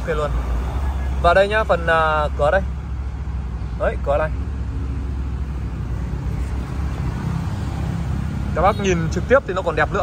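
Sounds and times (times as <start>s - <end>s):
motor vehicle rumbling: 0.0s - 10.0s.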